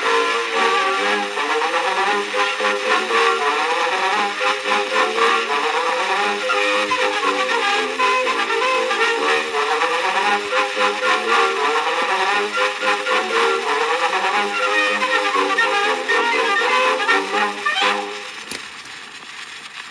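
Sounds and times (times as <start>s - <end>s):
military brass band playing: 0.0s - 18.4s.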